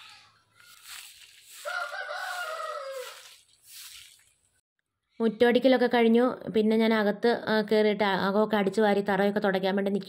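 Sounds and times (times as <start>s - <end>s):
rooster crowing: 1.5s - 3.4s.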